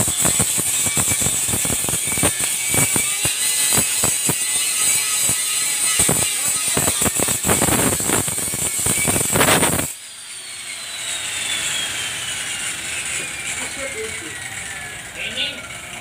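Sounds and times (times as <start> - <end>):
angle grinder grinding steel: 0.0 - 16.0
grinder disc spinning down: 0.0 - 16.0.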